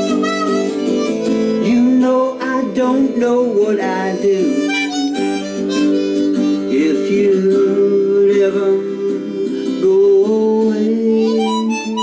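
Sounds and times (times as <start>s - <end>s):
harmonica playing: 0.0s - 12.0s
strummed guitar: 0.0s - 12.0s.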